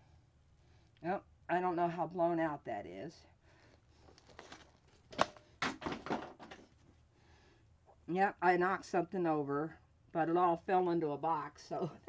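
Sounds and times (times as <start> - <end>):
small objects clattering into box: 4.2 - 6.7.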